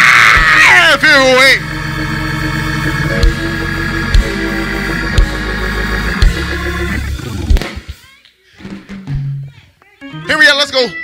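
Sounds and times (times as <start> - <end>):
church organ chords: 0.7 - 7.5
drum-like thump: 3.1 - 5.5, 6.2 - 6.6, 7.5 - 7.9.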